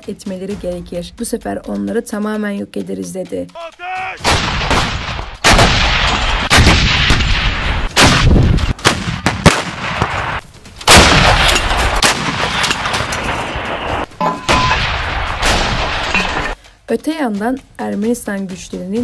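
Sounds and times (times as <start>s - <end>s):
artillery blasts with rolling rumble: 4.2s - 16.6s.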